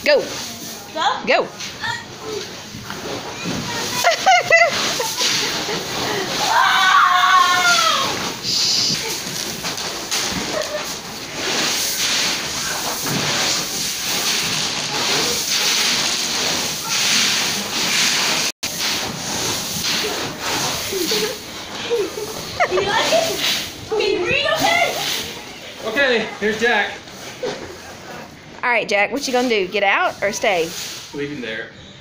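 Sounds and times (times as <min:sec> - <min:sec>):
dried corn kernels rustling: 0:02.8 - 0:23.8.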